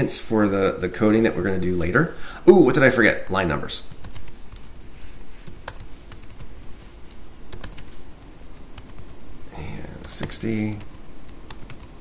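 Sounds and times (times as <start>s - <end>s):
computer keyboard typing: 3.2s - 6.7s, 7.5s - 12.0s.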